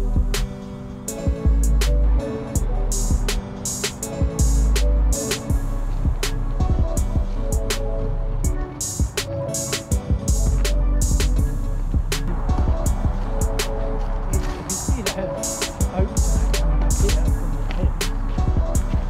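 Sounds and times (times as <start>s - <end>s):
bass line: 0.0s - 0.5s, 1.3s - 3.4s, 4.2s - 8.7s, 10.2s - 15.1s, 15.9s - 19.0s
steady drum beat: 0.0s - 0.5s, 2.6s - 7.8s, 8.8s - 19.0s.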